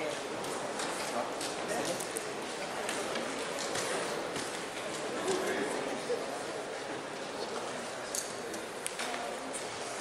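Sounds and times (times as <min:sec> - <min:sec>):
low indistinct voices: 0:00.0 - 0:10.0.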